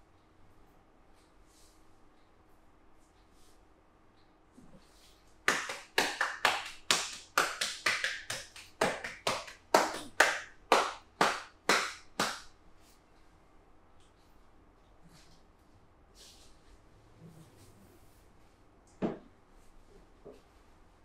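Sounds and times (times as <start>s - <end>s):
hands slapping in massage: 5.4s - 12.5s.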